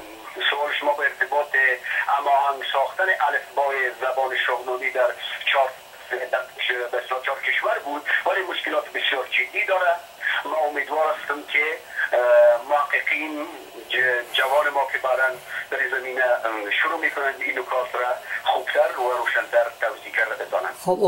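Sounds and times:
person speaking over phone line: 0.0 - 21.0.

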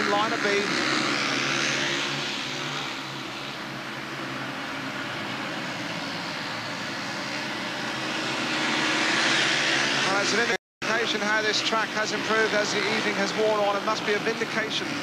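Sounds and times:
motorcycle engines racing: 0.0 - 15.0.

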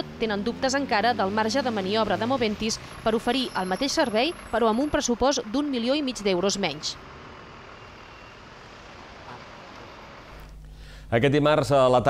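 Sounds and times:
bus driving slowly past: 0.0 - 11.0.

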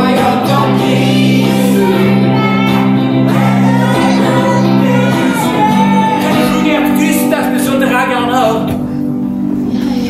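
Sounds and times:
voices singing: 0.0 - 8.7
guitar: 0.0 - 10.0.

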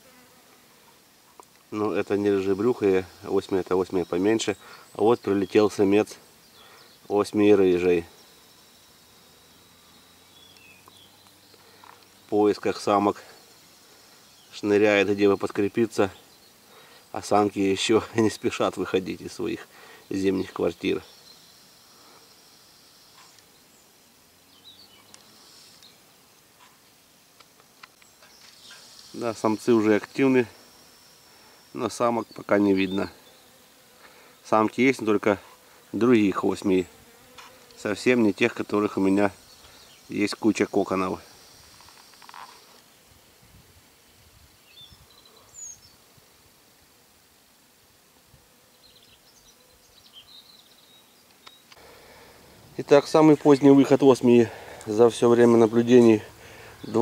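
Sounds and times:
steady high-pitched hiss: 0.0 - 57.0
faint chirps: 1.3 - 27.0, 27.6 - 36.9, 37.8 - 43.0, 44.6 - 46.0, 48.7 - 57.0.

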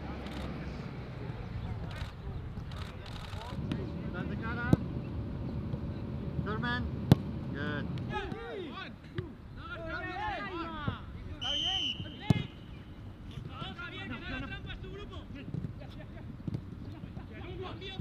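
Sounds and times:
footballs kicked thudding: 7.0 - 7.4
players shouting: 8.0 - 12.8
high whistle-like tone: 11.4 - 12.6.

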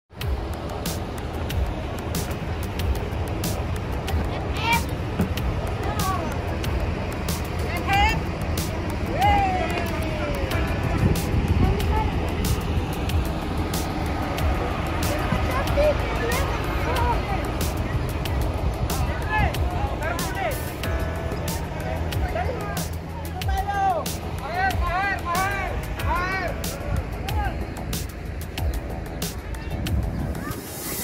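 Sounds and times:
diesel engines idling: 0.1 - 31.0.

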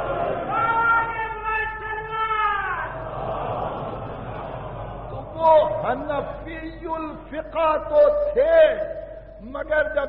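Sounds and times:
murmur and hiss of old recording: 0.0 - 10.0.

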